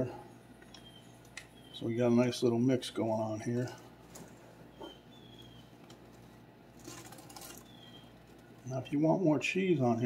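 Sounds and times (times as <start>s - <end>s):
steady low hum: 0.0s - 10.0s
cheese sprinkling rustle: 5.4s - 8.9s.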